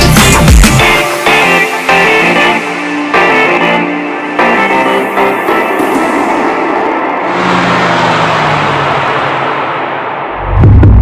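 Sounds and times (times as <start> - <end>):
car engine driving away: 7.2 - 11.0.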